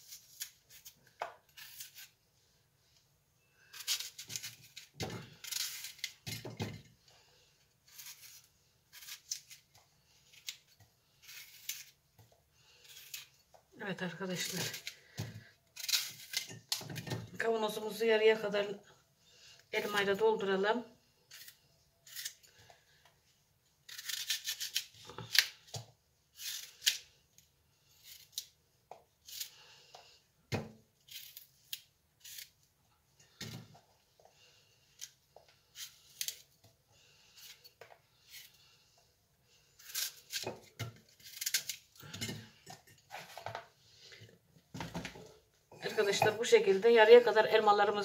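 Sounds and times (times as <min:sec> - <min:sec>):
knife cutting apples: 0:00.0 - 0:02.2, 0:03.6 - 0:06.8, 0:07.8 - 0:17.4, 0:23.8 - 0:27.2, 0:27.9 - 0:38.7.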